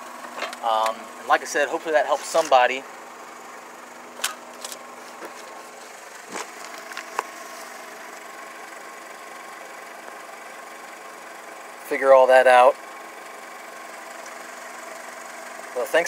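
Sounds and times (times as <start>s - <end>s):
low mechanical hum: 0.0s - 16.0s
handling clicks and rustles: 2.1s - 2.7s, 4.2s - 7.8s.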